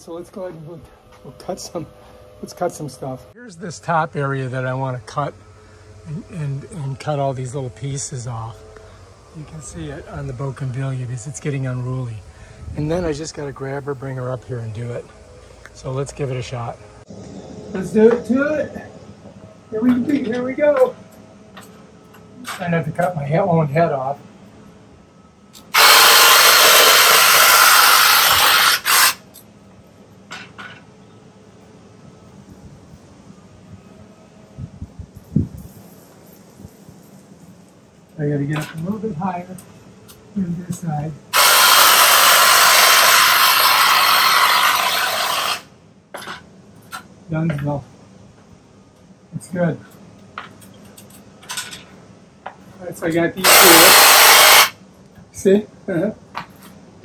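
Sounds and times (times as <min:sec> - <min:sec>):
hedge trimmer running: 0:25.7 - 0:29.2, 0:41.4 - 0:45.6.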